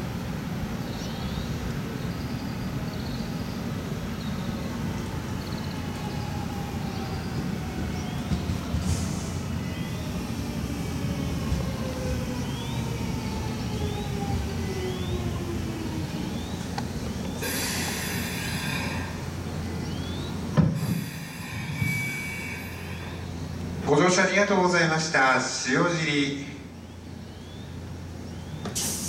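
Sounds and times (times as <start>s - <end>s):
train motor whine: 5.6s - 23.8s
brakes squealing and hissing: 17.2s - 23.6s, 28.6s - 29.0s.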